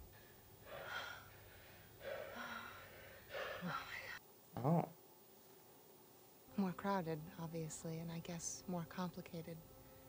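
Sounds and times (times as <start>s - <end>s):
woman panting: 0.6s - 4.2s.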